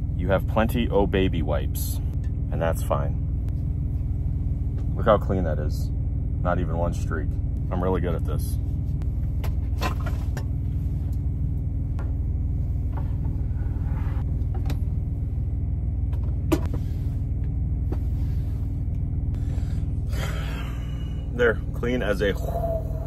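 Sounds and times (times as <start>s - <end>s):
truck engine idling: 0.0s - 23.0s.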